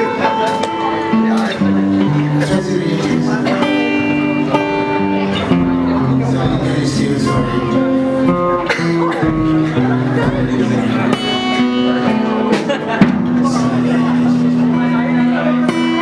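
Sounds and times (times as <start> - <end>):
acoustic guitar playing: 0.0 - 16.0.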